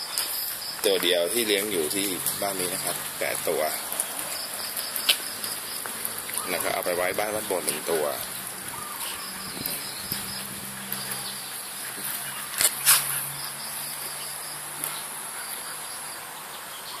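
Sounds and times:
insects chirring: 0.0s - 17.0s.

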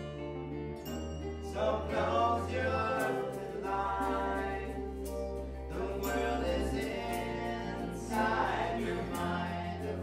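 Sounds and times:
voices singing in harmony: 1.4s - 10.0s.

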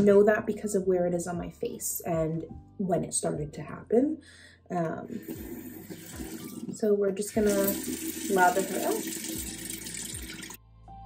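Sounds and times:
soft music: 0.0s - 11.0s
tap running into a sink: 5.2s - 6.8s.

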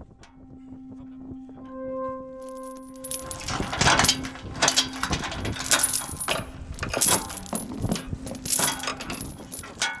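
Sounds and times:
metallic clinking and rattling: 2.4s - 10.0s.

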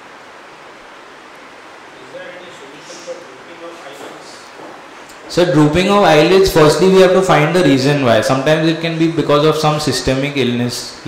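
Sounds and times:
steady room noise hiss: 0.0s - 11.0s.

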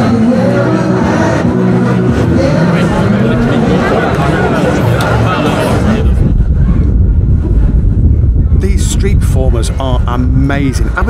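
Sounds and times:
wind buffeting microphone: 2.8s - 11.0s.

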